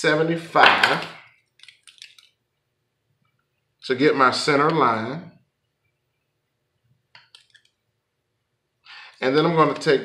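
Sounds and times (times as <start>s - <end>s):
man speaking: 0.0s - 1.2s, 3.8s - 5.4s, 9.2s - 10.0s.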